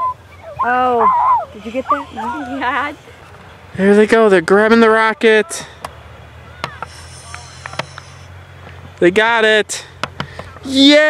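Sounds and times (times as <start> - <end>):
faint distant voices: 0.0 - 11.0
high hiss: 6.8 - 8.4.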